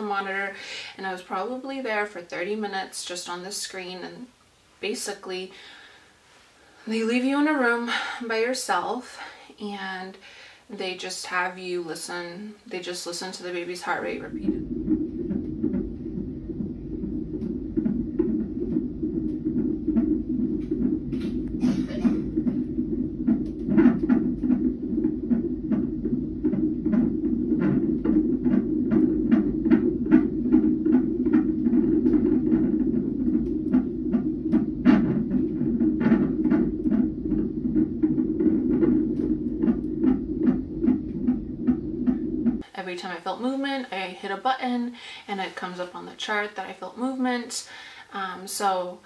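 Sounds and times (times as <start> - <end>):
fetal heartbeat on doppler speaker: 0.0 - 4.0, 6.9 - 8.5, 11.0 - 48.7
steady low hum: 0.0 - 49.0.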